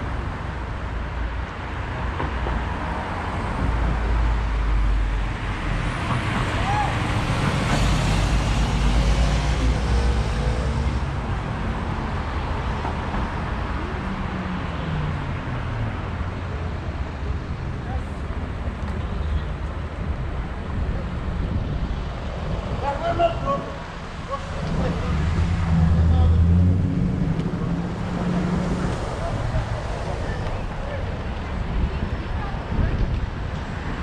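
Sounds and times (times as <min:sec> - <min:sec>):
passing cars rumble: 0:00.0 - 0:34.0
vehicle engine passing close: 0:24.7 - 0:30.1.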